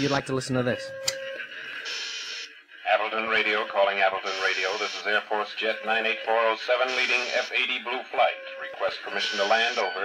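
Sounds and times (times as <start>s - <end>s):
radio static hiss: 0.0s - 0.4s, 1.4s - 10.0s
radio-filtered man's voice: 0.0s - 1.0s, 2.7s - 10.0s.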